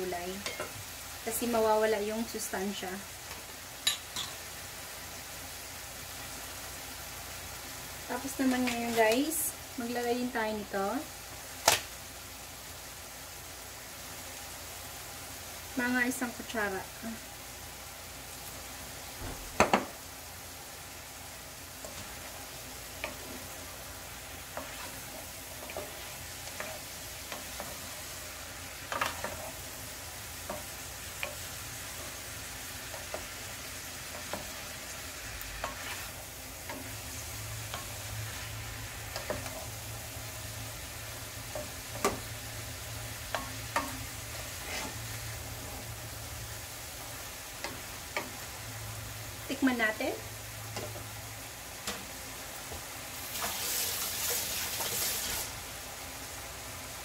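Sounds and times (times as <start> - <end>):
food sizzling in frying pan: 0.0 - 57.0
spatula scraping and tapping pan: 24.5 - 27.9, 28.8 - 29.6, 30.4 - 32.2, 34.1 - 34.7, 35.4 - 38.0, 41.5 - 42.3, 43.2 - 45.1, 50.7 - 51.1.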